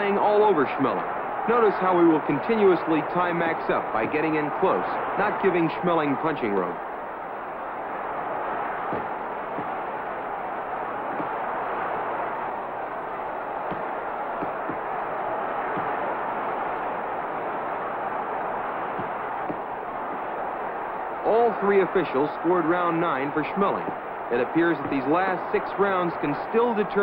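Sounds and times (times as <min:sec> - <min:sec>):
arena crowd noise: 0:00.0 - 0:27.0.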